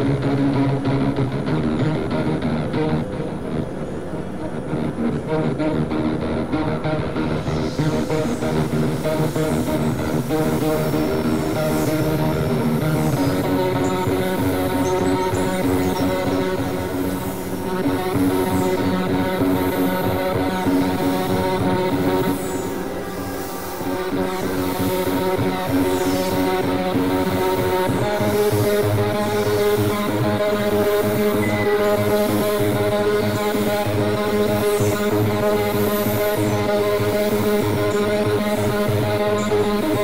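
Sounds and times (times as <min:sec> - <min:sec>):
synthesizer drone music: 0:00.0 - 0:40.0.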